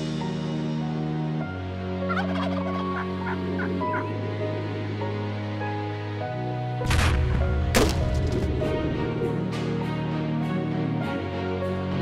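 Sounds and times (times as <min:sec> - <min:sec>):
background music chords: 0:00.0 - 0:12.0
turkey gobbling: 0:02.1 - 0:04.1.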